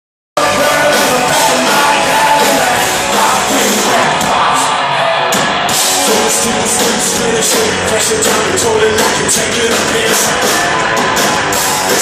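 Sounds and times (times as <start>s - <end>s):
person singing and shouting: 0.4s - 5.3s
hard rock band playing live: 0.4s - 12.0s.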